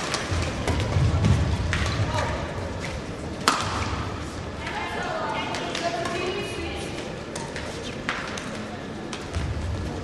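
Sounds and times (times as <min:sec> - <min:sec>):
voices in a large hall: 0:00.0 - 0:10.0
racket striking shuttlecock: 0:03.4 - 0:03.9.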